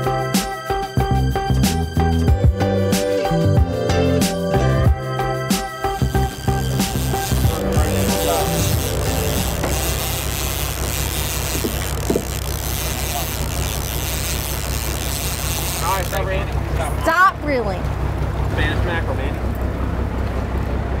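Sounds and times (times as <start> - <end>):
background music: 0.0 - 10.6
fishing boat engine rumble: 4.6 - 21.0
wind: 4.6 - 21.0
water noise: 6.0 - 21.0.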